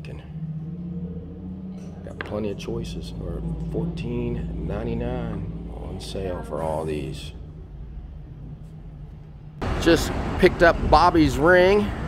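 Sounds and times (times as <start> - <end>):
low hum and rumble: 0.0 - 12.0
man speaking: 2.1 - 7.4.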